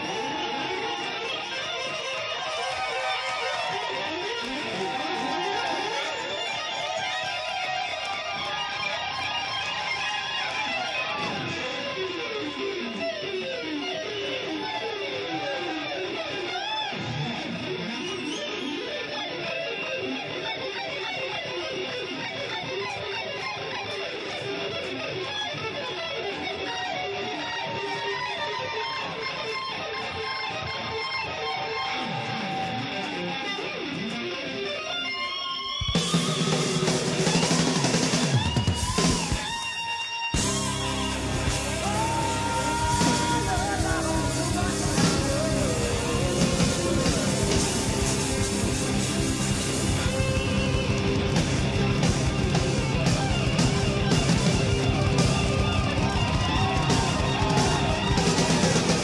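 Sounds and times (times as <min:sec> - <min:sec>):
electric guitar solo: 0:00.0 - 0:59.0.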